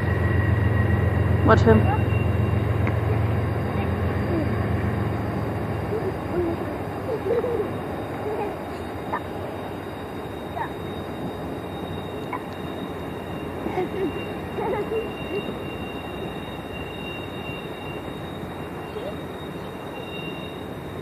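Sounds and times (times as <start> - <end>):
distant train rumbling on rails: 0.0 - 21.0.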